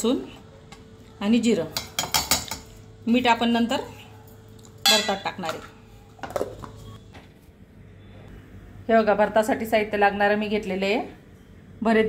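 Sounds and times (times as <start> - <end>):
metal bowls clinking: 4.8 - 7.0.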